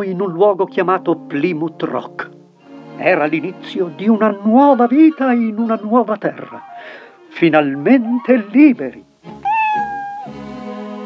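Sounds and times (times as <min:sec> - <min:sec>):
background music: 0:00.0 - 0:11.0
cartoon cat meowing: 0:09.4 - 0:10.3.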